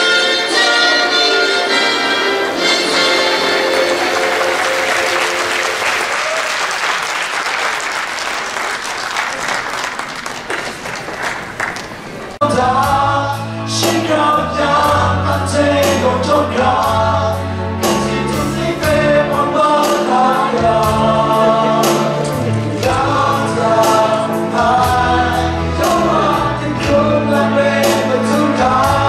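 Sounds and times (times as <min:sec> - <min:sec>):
music: 0:00.0 - 0:06.2, 0:12.4 - 0:29.0
audience applause: 0:02.0 - 0:12.4
group singing into microphones: 0:12.4 - 0:29.0.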